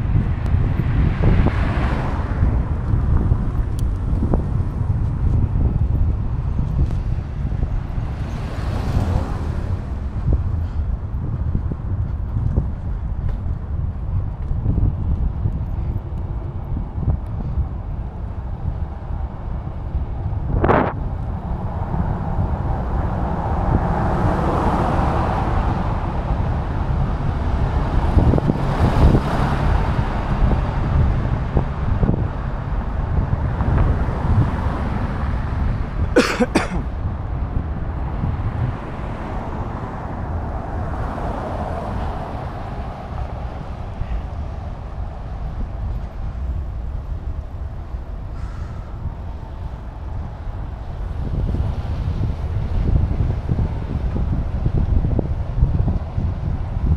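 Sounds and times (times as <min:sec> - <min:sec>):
road traffic passing: 0:00.0 - 0:56.9
wind rumbling on microphone: 0:00.0 - 0:56.9.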